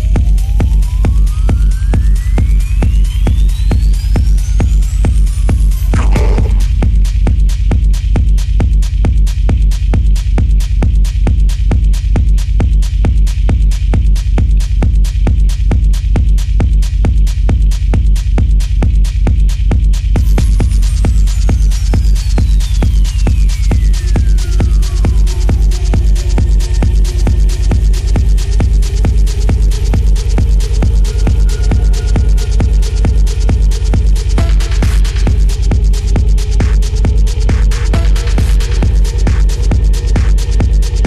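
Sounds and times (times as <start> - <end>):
droning bass: 5.5 - 7.9
synth sweep: 6.0 - 6.9
kick drum: 6.0 - 21.7, 26.0 - 41.0.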